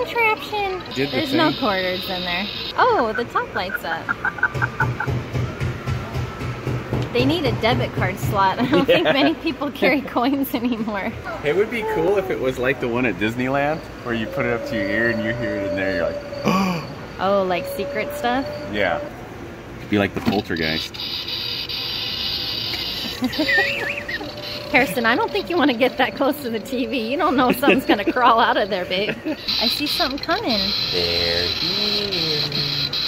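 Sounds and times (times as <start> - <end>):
faint steady tone: 0.0 - 4.0
television static hiss: 0.0 - 5.1, 19.9 - 33.0
low regular pulsing: 0.0 - 6.1, 12.8 - 19.8, 20.4 - 33.0.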